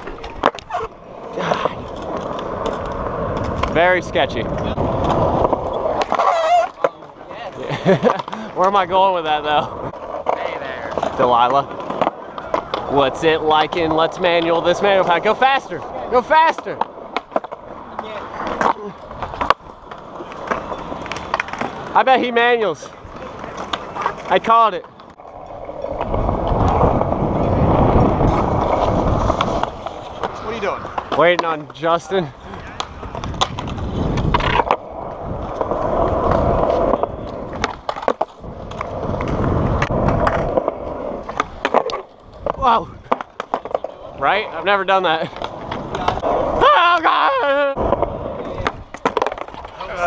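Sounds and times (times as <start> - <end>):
skateboard clacks: 0.0 - 50.0
skateboard wheels rolling on concrete: 0.0 - 50.0
skateboard knocks: 32.7 - 34.9.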